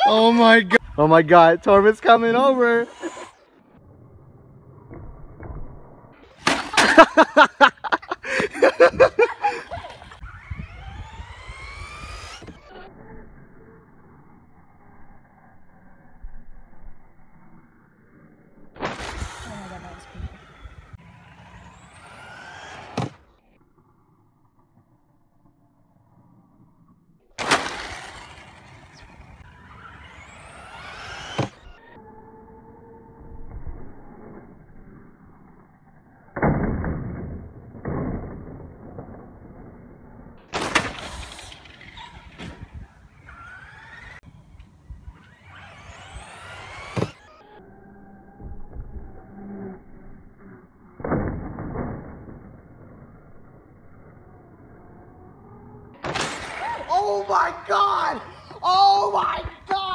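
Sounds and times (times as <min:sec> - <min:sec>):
electric motors whining: 0:00.0 - 0:05.0, 0:07.6 - 0:25.4, 0:26.1 - 0:36.3, 0:40.4 - 0:59.8.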